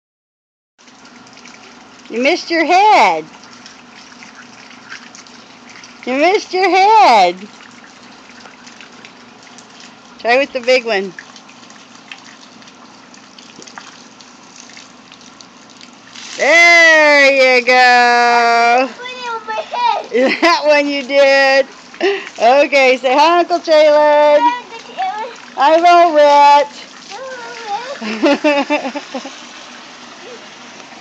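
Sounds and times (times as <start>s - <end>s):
water running from hose: 0.8s - 31.0s
faint splashing ticks: 3.3s - 6.1s.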